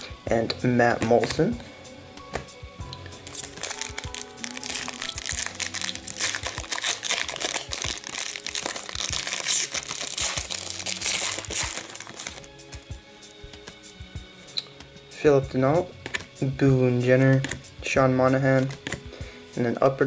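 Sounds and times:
background music: 0.0 - 20.0
foil wrapper crinkling: 3.2 - 12.9.

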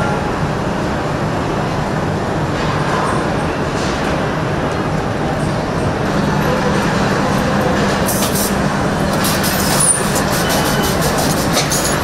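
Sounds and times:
machinery din with low hum: 0.0 - 12.0.

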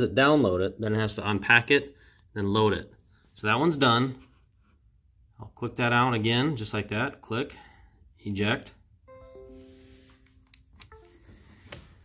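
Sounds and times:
laptop notification chime: 9.1 - 11.9.

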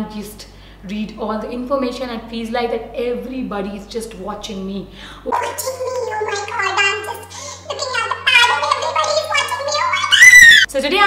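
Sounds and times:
steady low hum: 0.0 - 11.0
woman's high-pitched chatter: 3.5 - 11.0.

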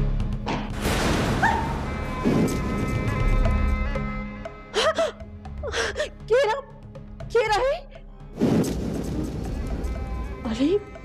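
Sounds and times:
low music drone: 1.7 - 6.3
woman gasping and whimpering: 4.7 - 6.2.

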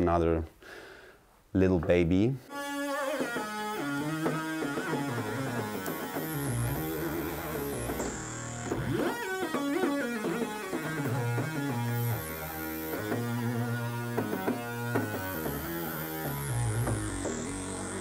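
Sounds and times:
synthesizer bass line: 3.2 - 18.0.

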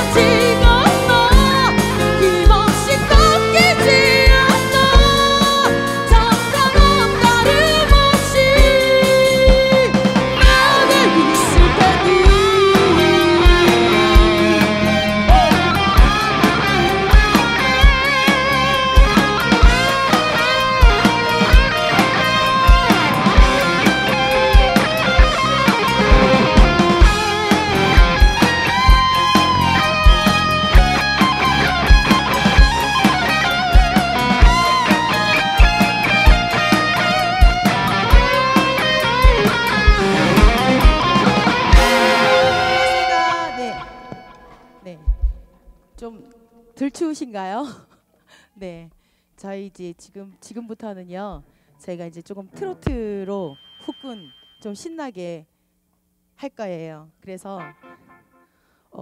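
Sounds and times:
live rock band: 0.0 - 45.8
electric guitar lead: 0.0 - 46.8, 52.5 - 54.6, 57.5 - 58.6.

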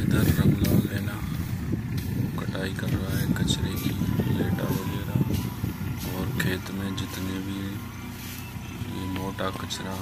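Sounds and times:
tractor diesel engine running: 0.0 - 10.0.

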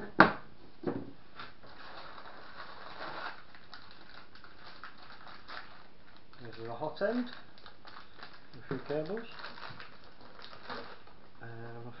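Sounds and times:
foam rustling and creaking: 1.4 - 11.2.

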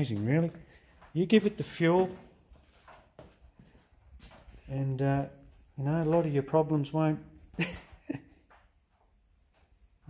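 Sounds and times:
man speaking: 0.0 - 2.3, 4.6 - 7.4.

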